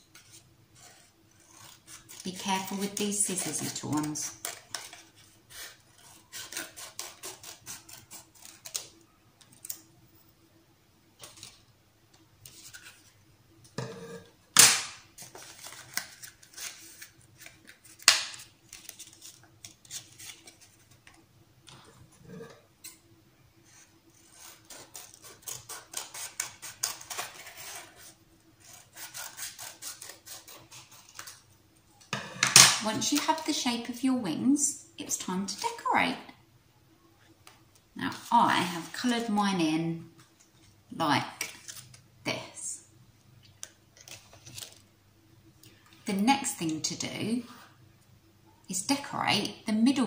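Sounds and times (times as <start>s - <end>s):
paper rustling: 15.2s - 21.2s.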